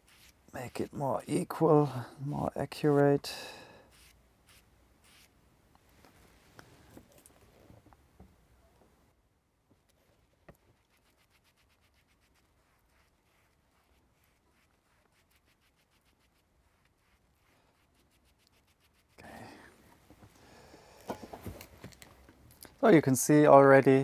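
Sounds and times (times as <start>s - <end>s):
sponge wiping rubber sheet: 0.0s - 1.3s, 3.9s - 5.3s, 10.8s - 19.2s.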